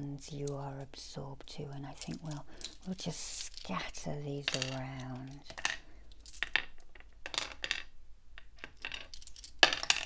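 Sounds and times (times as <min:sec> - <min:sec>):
crystal figurines clinking: 0:01.8 - 0:07.9.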